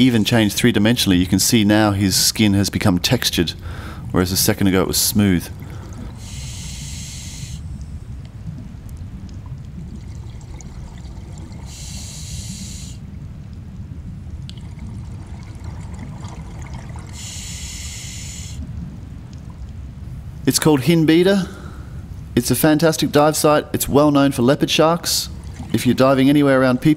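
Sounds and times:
diver breathing through regulator: 3.6 - 4.1, 5.6 - 7.8, 11.6 - 13.1, 17.1 - 18.7
low underwater rumble: 3.6 - 20.5, 25.3 - 26.9.

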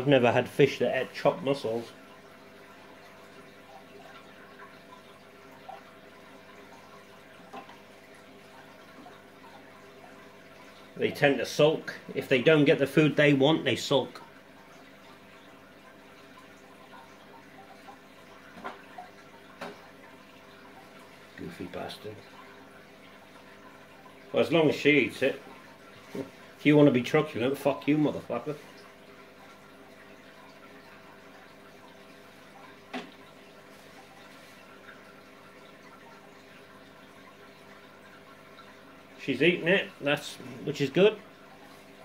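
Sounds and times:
aquarium water trickling: 0.0 - 42.0
tank pump humming: 0.0 - 42.0.

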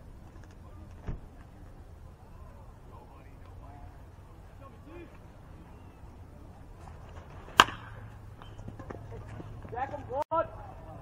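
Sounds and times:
metal bat hitting ball: 7.5 - 8.1.

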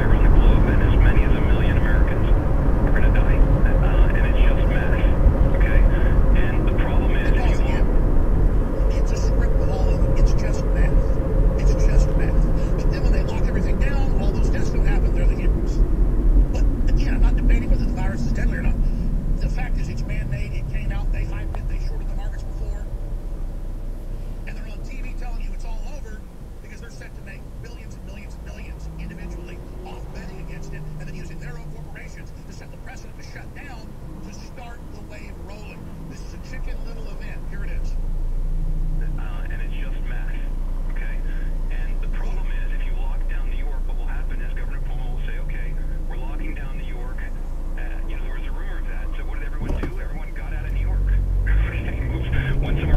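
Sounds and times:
car engine idling: 0.0 - 52.9
passing traffic: 0.0 - 52.9
road and tyre noise: 0.0 - 52.9.

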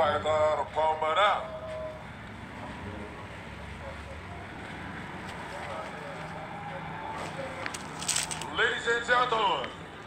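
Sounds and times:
faint distant voices: 0.0 - 9.9.

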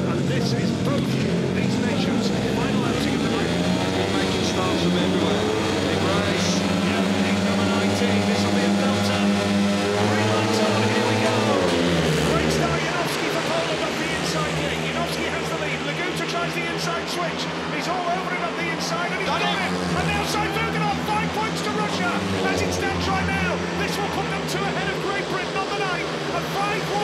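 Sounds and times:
motorcycle engines revving: 0.0 - 27.0.

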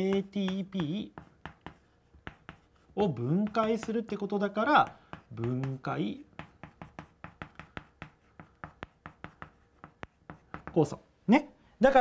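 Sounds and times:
chalk tapping and scraping on blackboard: 0.0 - 11.1.

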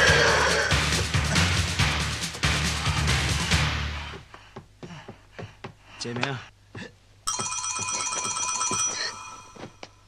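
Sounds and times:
electric bell ringing: 7.3 - 9.9.

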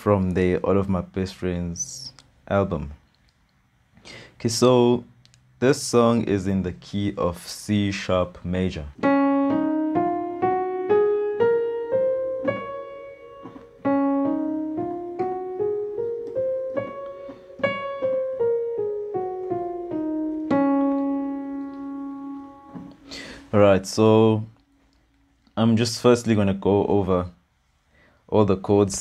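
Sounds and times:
piano scale: 9.0 - 24.6.

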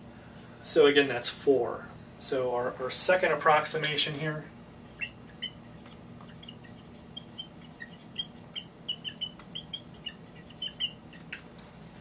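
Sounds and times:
marker squeaking on whiteboard: 4.9 - 11.5.

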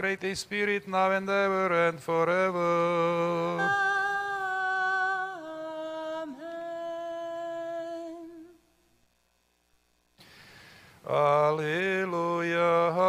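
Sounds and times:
person chanting: 0.0 - 8.5, 11.1 - 13.0.

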